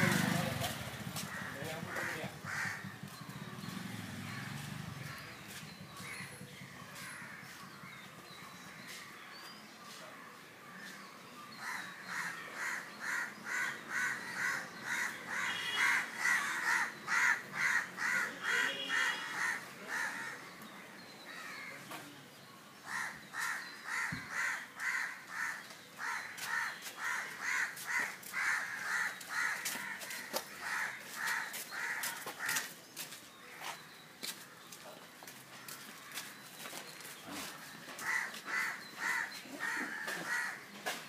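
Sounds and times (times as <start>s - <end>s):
crows cawing: 1.2s - 3.1s, 11.6s - 20.5s, 21.3s - 21.9s, 22.8s - 32.7s, 37.3s - 41.0s.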